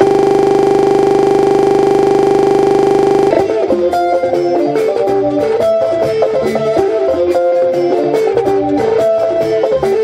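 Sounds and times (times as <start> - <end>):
loud buzzing drone glitch: 0.0 - 3.4.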